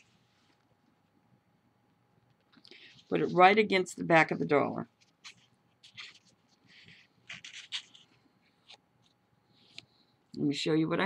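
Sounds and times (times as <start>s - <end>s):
paper bill crinkling: 5.0s - 9.9s.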